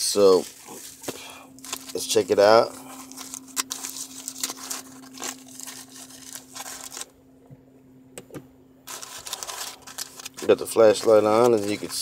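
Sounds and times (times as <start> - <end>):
aluminium foil crinkling: 0.0 - 7.1, 8.8 - 12.0.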